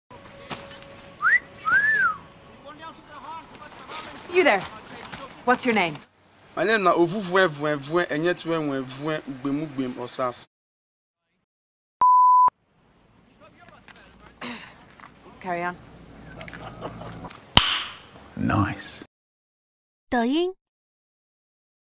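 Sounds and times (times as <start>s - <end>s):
faint outdoor ambience: 0.1s - 10.5s, 12.5s - 19.1s
wolf whistle: 1.2s - 2.2s
high electronic test tone beep: 12.0s - 12.5s.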